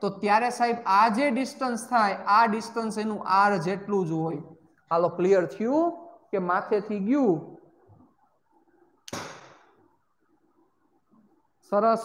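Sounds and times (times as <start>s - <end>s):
sharp clack or knock: 9.1s - 9.6s.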